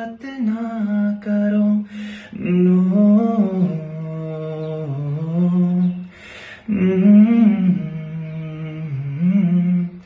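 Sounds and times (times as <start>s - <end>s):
man humming a slow melody: 0.0s - 10.0s
man breathing in: 1.9s - 2.4s, 6.1s - 6.7s.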